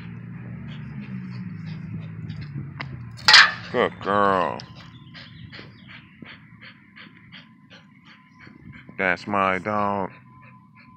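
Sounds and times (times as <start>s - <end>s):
dog breathing hard through nose: 0.0s - 2.5s, 4.7s - 10.9s.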